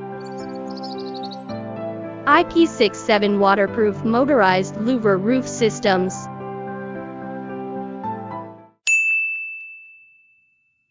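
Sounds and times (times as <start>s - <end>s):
background music: 0.0s - 8.8s
bright logo chime ding: 8.9s - 10.6s.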